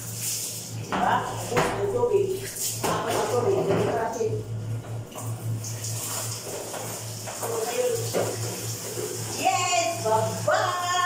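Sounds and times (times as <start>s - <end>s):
water splashing in a basin: 0.0s - 11.0s
low steady hum: 0.1s - 11.0s.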